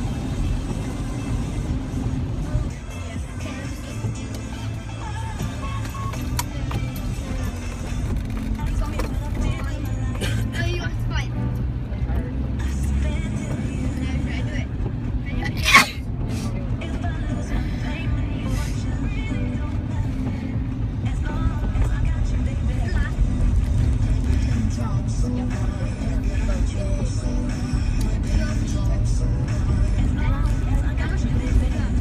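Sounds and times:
car engine and road rumble: 0.0 - 32.0
car radio music and voices: 0.0 - 32.0.

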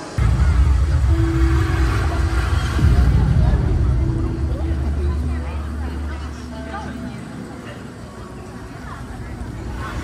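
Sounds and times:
faint voices: 0.0 - 10.0
deep rumbling bass: 0.2 - 6.5.

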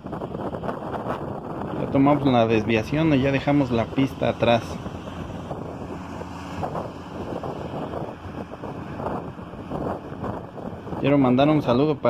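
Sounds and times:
low engine hum: 0.0 - 12.0
road and wind noise inside car: 0.0 - 12.0.

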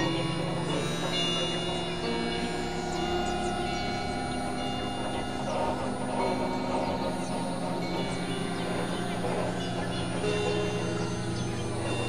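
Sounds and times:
overlapping music droning tones: 0.0 - 12.0.

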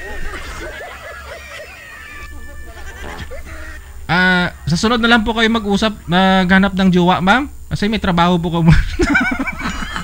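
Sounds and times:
faint laughter: 0.0 - 3.9, 8.7 - 10.0
steady low hum: 0.0 - 10.0.

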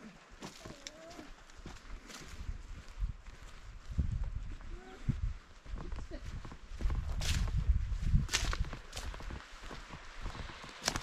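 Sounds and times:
footsteps on dirt and leaves: 0.1 - 11.0.

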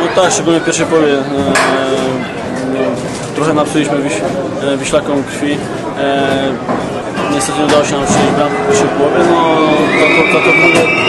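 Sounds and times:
man speaking: 7.3 - 10.8.

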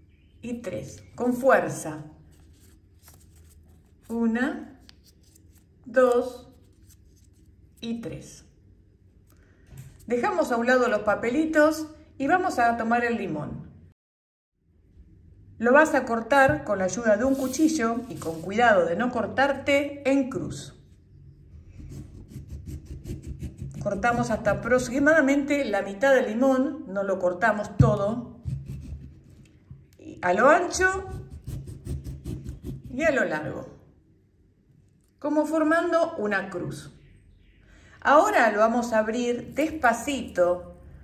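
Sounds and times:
paper rustling and crinkling: 2.2 - 4.2, 4.8 - 7.6
knife sawing lime peel: 21.8 - 24.1, 31.0 - 33.0.

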